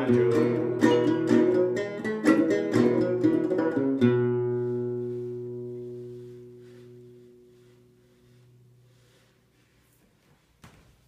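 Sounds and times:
banjo chord ringing out: 0.0 - 8.4.

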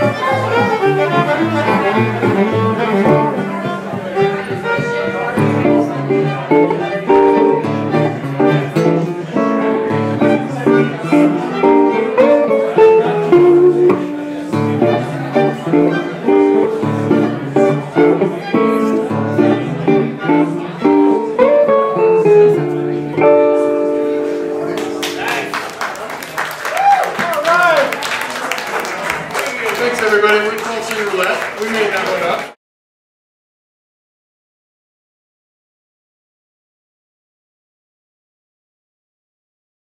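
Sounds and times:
violin bowing melody: 0.0 - 24.7
acoustic guitars strumming chords: 0.0 - 25.5
audience applause: 24.7 - 32.6.

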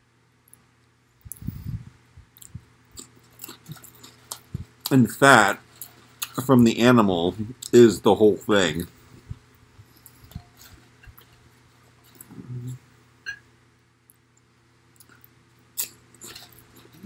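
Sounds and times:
man chewing crunchy food: 2.3 - 6.4, 14.9 - 17.0
man humming low: 12.3 - 12.8.

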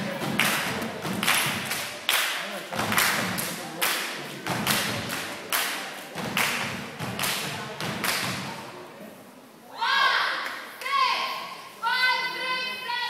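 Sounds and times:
echoing rhythmic stomps: 0.0 - 8.7
rhythmic claps: 0.0 - 8.7.

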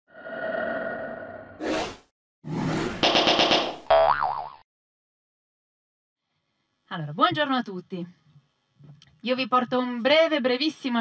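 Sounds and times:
springy cartoon boing: 3.1 - 4.6.

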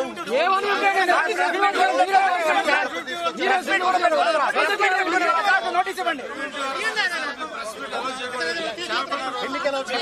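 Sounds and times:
men's voices talking over one another: 0.0 - 10.0.

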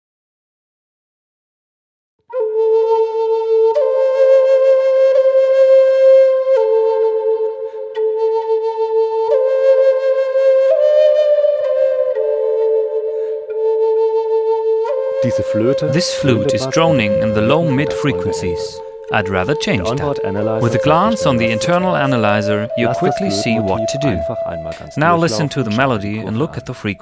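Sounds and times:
solo flute melody: 2.3 - 27.0.

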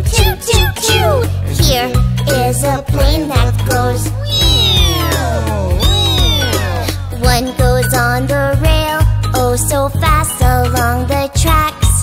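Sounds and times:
voice imitating an airplane: 0.0 - 1.4, 4.2 - 7.1
children's song over a beat: 0.0 - 12.0.

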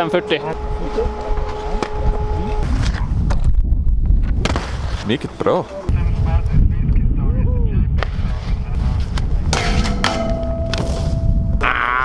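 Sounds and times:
steady tones: 0.0 - 2.7, 9.4 - 11.6
wind rumbling on microphone: 0.6 - 5.3, 5.9 - 12.0.

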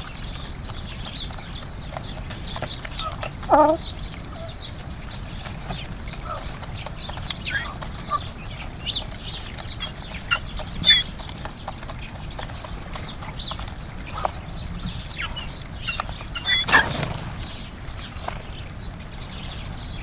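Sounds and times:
birds pecking on wooden tray: 0.0 - 19.0
sparrows chirping: 0.0 - 20.0.

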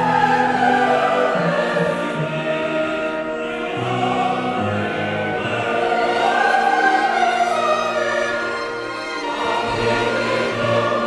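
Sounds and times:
choir and orchestra: 0.0 - 11.0.

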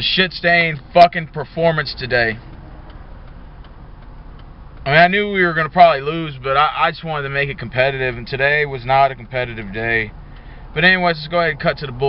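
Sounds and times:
man talking: 0.0 - 2.4, 4.8 - 10.1, 10.8 - 12.0
car cabin noise: 0.0 - 12.0
faint ticks: 2.3 - 4.9, 9.6 - 11.3.

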